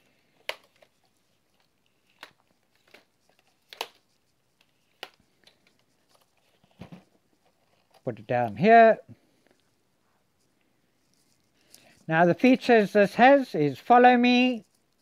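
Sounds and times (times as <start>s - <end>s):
plastic drone arms clicking: 0.4s - 6.5s.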